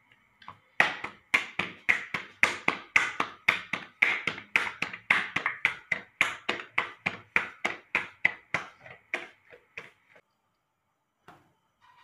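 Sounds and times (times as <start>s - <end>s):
hand slapping dough: 0.4s - 10.2s.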